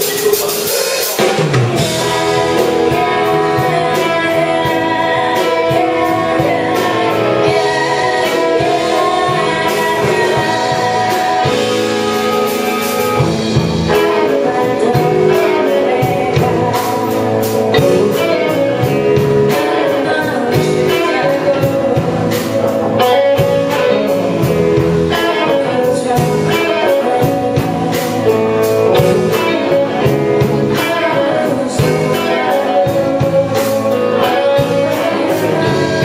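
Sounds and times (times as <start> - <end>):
bass guitar: 0.0 - 36.0
drums: 0.0 - 36.0
electric guitar: 0.0 - 36.0
keyboard: 0.0 - 36.0
woman singing: 1.6 - 36.0.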